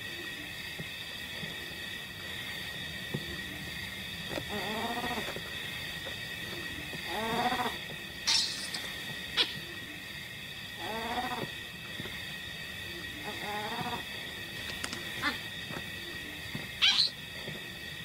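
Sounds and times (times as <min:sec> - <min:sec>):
baby baboon crying: 0:16.8 - 0:17.1.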